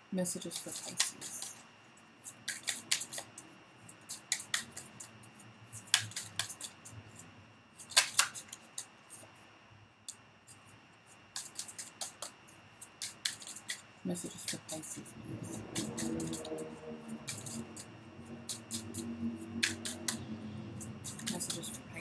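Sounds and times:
cards being shuffled: 0.5s - 1.6s, 2.3s - 3.3s, 4.1s - 5.1s, 5.7s - 7.2s, 7.8s - 9.3s, 11.3s - 15.0s, 15.7s - 16.6s, 17.2s - 20.2s.

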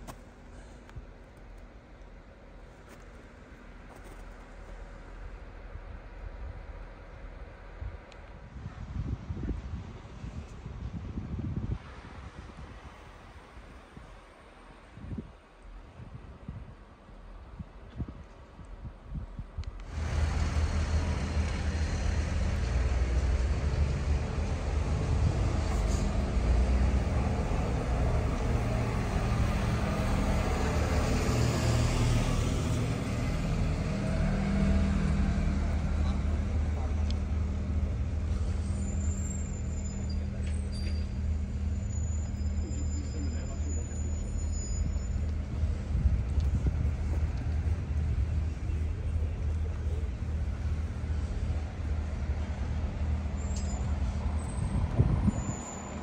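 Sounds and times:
heavy vehicle engine humming: 0.0s - 10.4s, 19.8s - 56.0s
car passing: 19.9s - 56.0s
high brake squeals: 38.3s - 45.6s, 53.3s - 56.0s.

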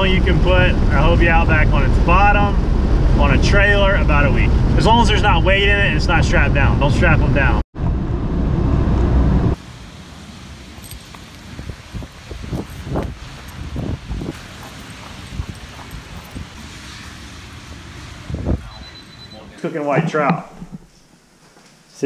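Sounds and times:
wind: 0.0s - 22.0s
car cabin road noise: 0.2s - 20.9s
traffic on wet road: 9.5s - 19.6s
footsteps on wet pavement: 10.0s - 20.8s.

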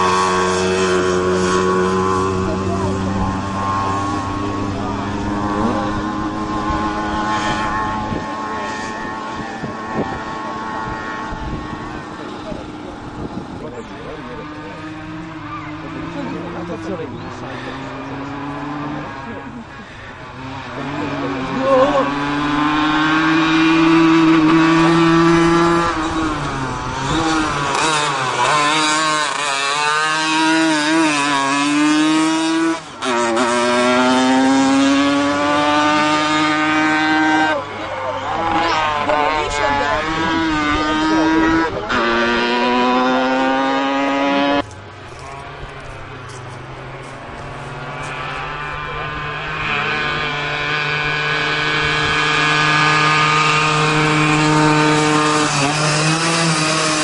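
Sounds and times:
small engine revving hard: 0.0s - 44.7s, 46.6s - 57.0s.

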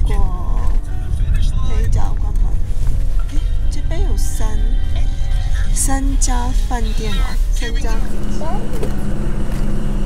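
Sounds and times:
vehicle engine idling: 6.6s - 10.0s.

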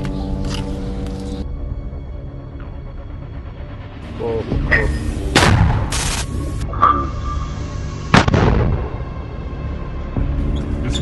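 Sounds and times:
rocket launcher firing: 8.1s - 9.0s.

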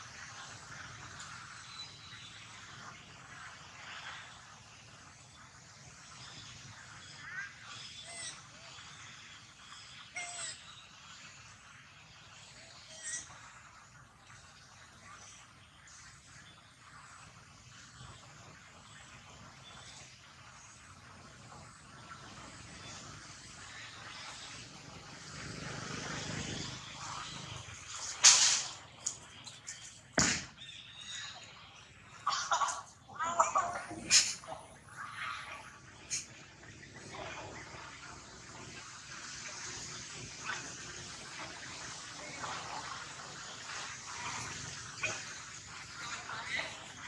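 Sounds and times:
outdoor background hum: 0.0s - 47.0s.

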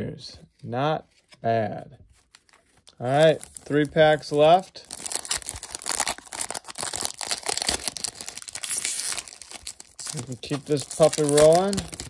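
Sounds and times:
foil wrapper tearing and crinkling: 2.4s - 12.0s.

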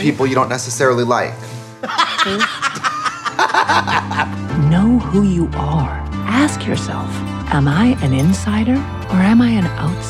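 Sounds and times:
two people laughing: 1.8s - 4.4s.

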